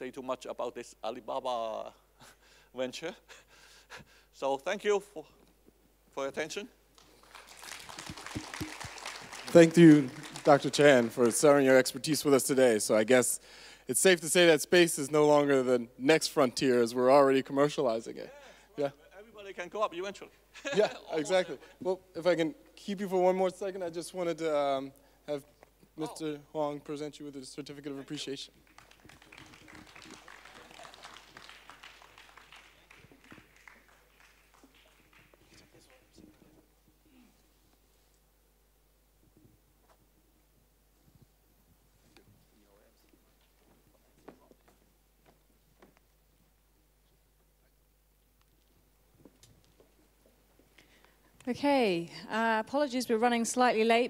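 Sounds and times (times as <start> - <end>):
audience applause: 7.0 - 11.7, 28.6 - 36.2.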